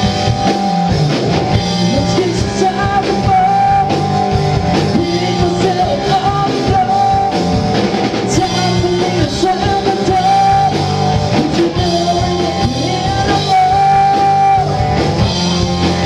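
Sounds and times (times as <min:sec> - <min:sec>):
bass guitar: 0:00.0 - 0:16.0
drum kit: 0:00.0 - 0:16.0
electric guitar: 0:00.0 - 0:16.0
person singing: 0:01.6 - 0:15.2.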